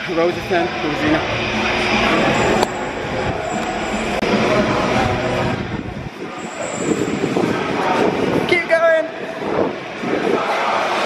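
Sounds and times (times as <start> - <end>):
background music: 0.0 - 6.1.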